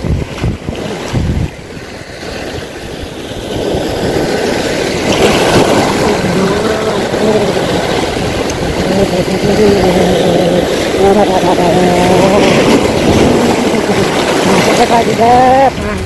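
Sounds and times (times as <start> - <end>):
waves breaking on rocks: 0.0 - 16.0.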